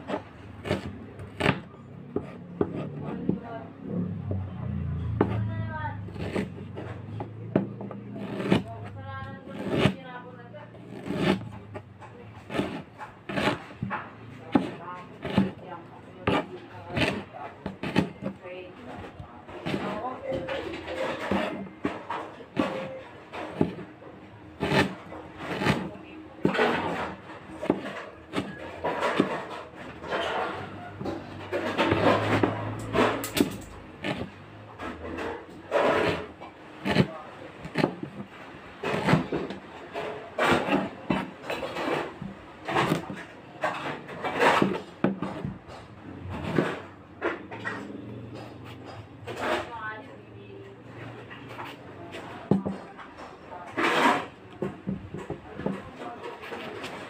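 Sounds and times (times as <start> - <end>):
cleaver chopping on plastic board: 0.0 - 3.5, 6.1 - 10.0, 10.8 - 15.6, 16.2 - 18.4, 21.0 - 23.9, 24.5 - 29.6, 30.4 - 34.4, 35.8 - 38.3, 38.9 - 39.6.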